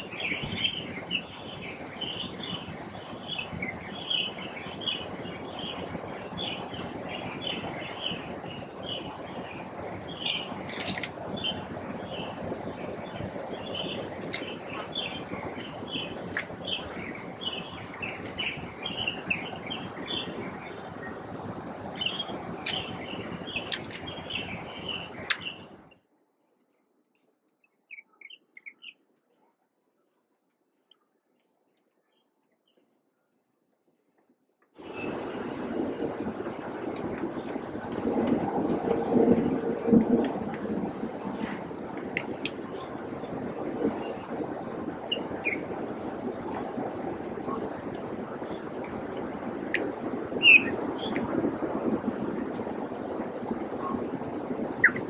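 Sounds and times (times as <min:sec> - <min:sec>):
bird chirping: 0:00.0 - 0:21.2, 0:21.9 - 0:25.7, 0:27.6 - 0:29.0, 0:50.4 - 0:51.2
low rushing crackling noise: 0:00.0 - 0:26.8, 0:33.8 - 0:55.0.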